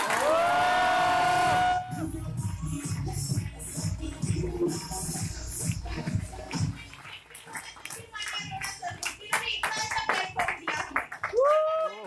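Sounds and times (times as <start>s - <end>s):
audience clapping: 0.0s - 1.6s, 5.6s - 12.0s
high whoop: 0.0s - 2.0s, 11.3s - 12.0s.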